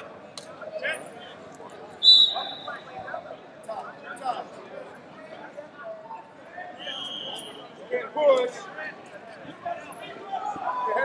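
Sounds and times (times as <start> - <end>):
voices in a large hall: 0.0 - 11.0
referee's whistle blast: 2.0 - 2.9, 6.8 - 7.6.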